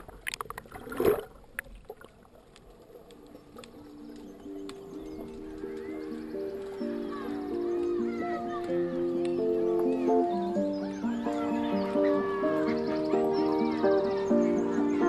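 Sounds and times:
background music of held notes: 0:03.3 - 0:15.0.

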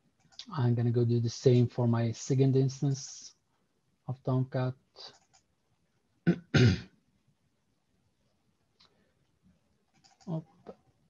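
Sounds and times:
man clearing his throat: 0:06.3 - 0:06.9.

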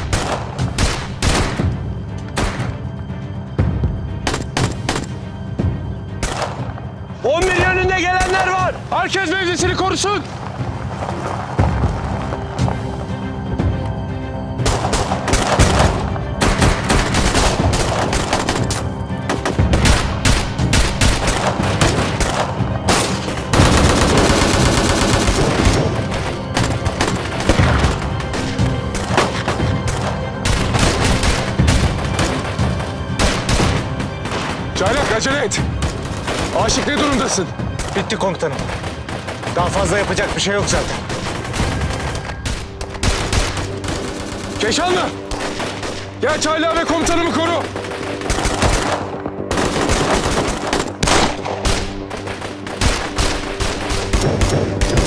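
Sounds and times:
rapid rifle fire: 0:00.0 - 0:01.6, 0:14.6 - 0:27.8, 0:38.6 - 0:46.1, 0:47.6 - 0:55.0
background music score: 0:00.0 - 0:55.0.

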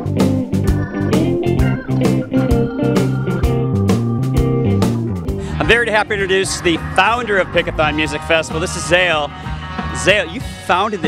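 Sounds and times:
guitar and bass: 0:00.0 - 0:11.0
held organ-like chords: 0:00.0 - 0:11.0
steady drum beat: 0:00.0 - 0:11.0.

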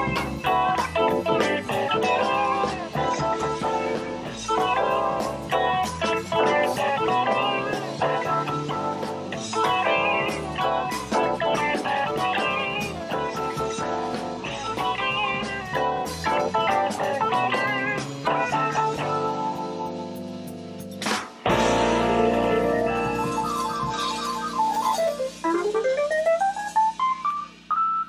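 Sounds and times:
drums: 0:00.0 - 0:28.0
live rock band playing blues: 0:00.0 - 0:28.0.

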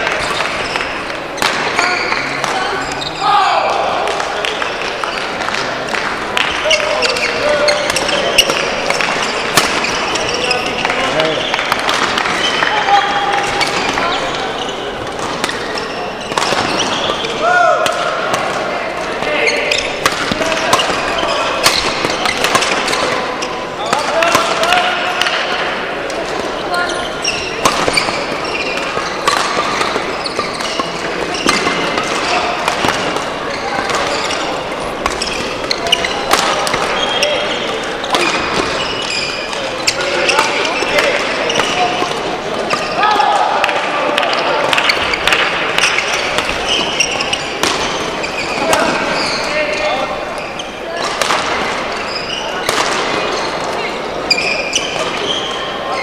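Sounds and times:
rackets hitting shuttlecocks: 0:00.0 - 0:55.3
court shoes squeaking: 0:00.0 - 0:56.0
voices echoing in hall: 0:00.0 - 0:56.0.

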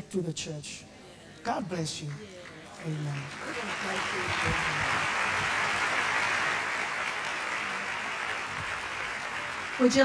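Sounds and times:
congregation applauding: 0:01.8 - 0:10.0.

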